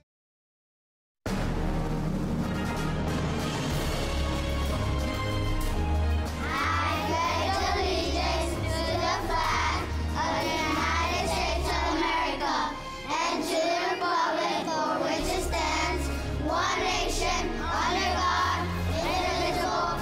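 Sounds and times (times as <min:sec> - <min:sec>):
background music: 0:01.3 - 0:20.0
children reciting in unison: 0:06.4 - 0:20.0.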